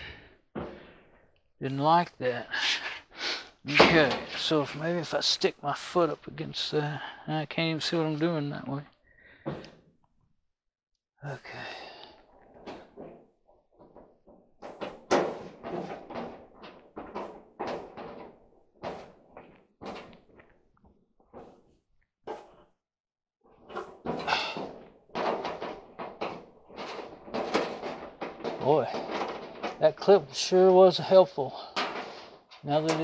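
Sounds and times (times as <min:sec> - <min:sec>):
sheet metal knocks and clunks: 0:03.7 - 0:04.9, 0:13.8 - 0:20.2, 0:23.6 - 0:33.0
metal panels scraping: 0:03.7 - 0:06.0, 0:13.9 - 0:20.4, 0:23.6 - 0:33.0.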